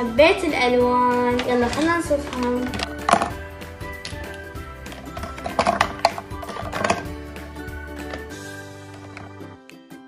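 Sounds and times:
background music with held notes: 0.0s - 10.0s
plastic markers clacking into organiser: 1.3s - 3.4s.

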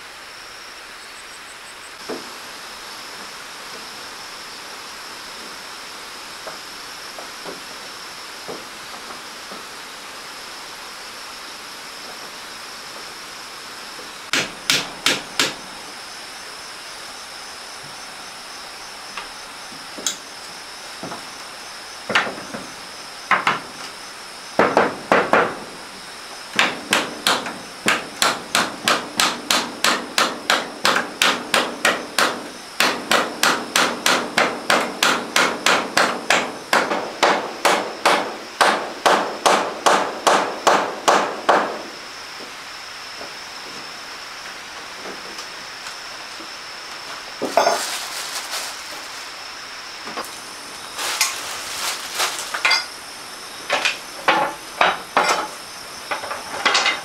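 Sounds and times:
hammer nailing wooden boards: 14.3s - 15.6s, 24.6s - 25.7s, 26.5s - 41.9s.

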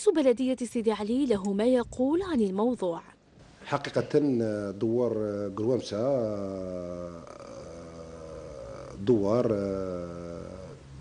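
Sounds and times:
man speaking: 3.6s - 10.8s.

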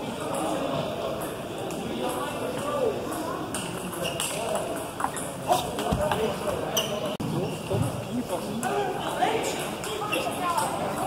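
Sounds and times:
indistinct voices in echoing hall: 0.0s - 11.0s.

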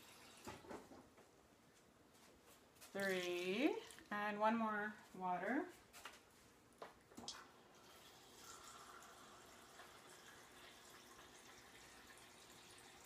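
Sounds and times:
water running into cup: 7.3s - 13.0s.

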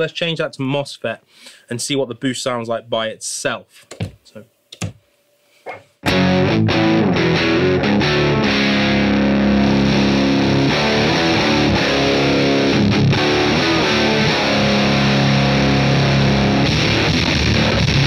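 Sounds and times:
overdriven electric guitar chords: 6.0s - 18.0s.

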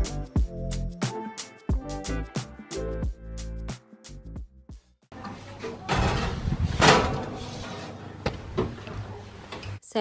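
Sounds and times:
oven door shutting: 5.2s - 9.6s.

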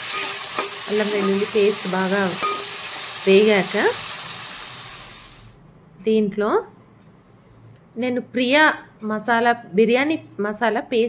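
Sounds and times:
onions sizzling in hot oil: 0.0s - 5.6s.

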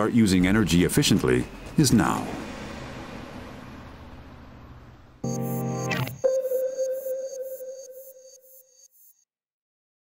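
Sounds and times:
city street traffic noise: 0.0s - 6.1s.

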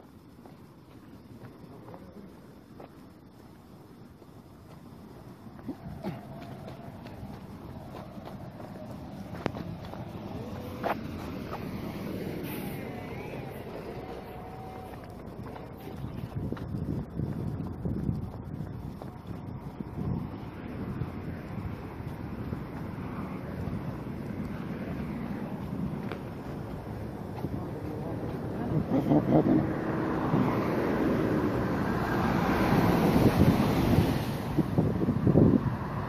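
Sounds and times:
road noise from wet streets: 0.0s - 36.0s
wind rumbling on microphone: 0.0s - 36.0s.

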